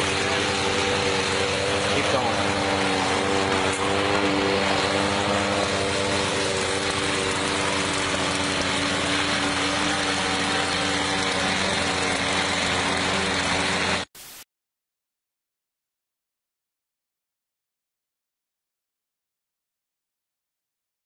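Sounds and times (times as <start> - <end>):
ride-on lawn tractor running: 0.0 - 14.1
walk-behind lawn mower running: 0.0 - 14.1.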